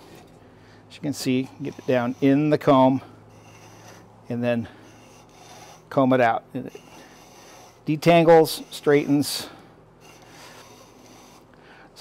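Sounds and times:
fibres rasping through comb pins: 1.1s - 12.0s.

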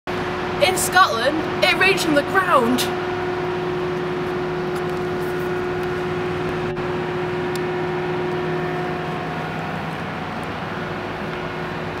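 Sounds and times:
city street noise: 0.1s - 12.0s
idling vehicle motor hum: 1.4s - 12.0s.

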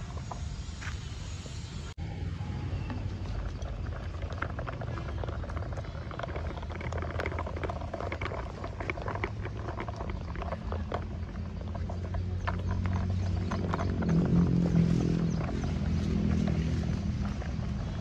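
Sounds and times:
toy tractor wheels rolling over dirt: 0.0s - 1.9s, 2.5s - 18.0s.

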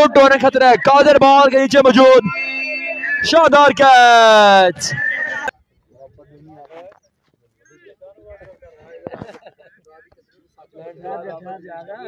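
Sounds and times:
faint voices calling out: 0.0s - 9.0s.

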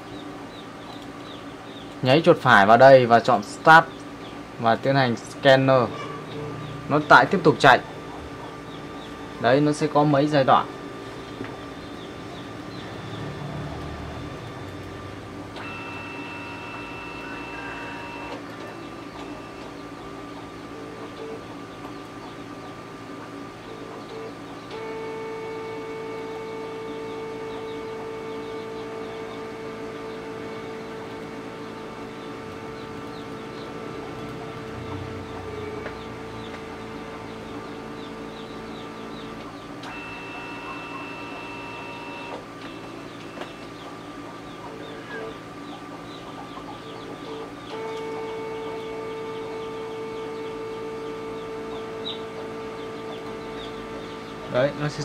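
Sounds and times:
scanner high whine: 0.0s - 55.0s
scanner motor hum: 0.0s - 55.0s.

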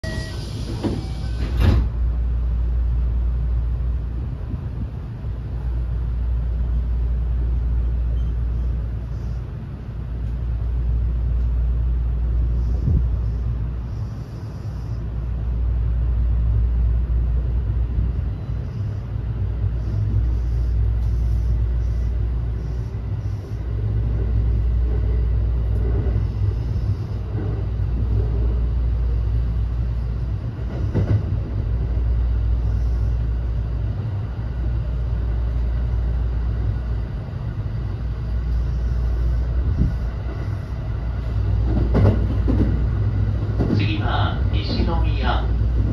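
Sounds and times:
train wheels rumbling on rail: 0.0s - 45.9s.

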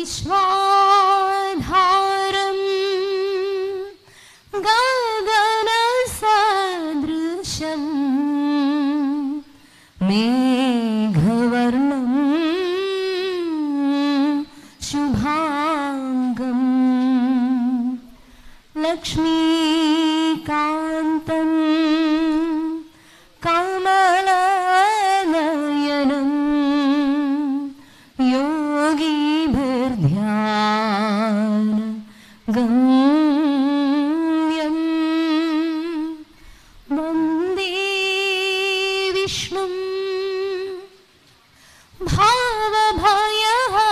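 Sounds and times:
woman singing with vibrato: 0.0s - 41.2s, 41.9s - 43.9s.

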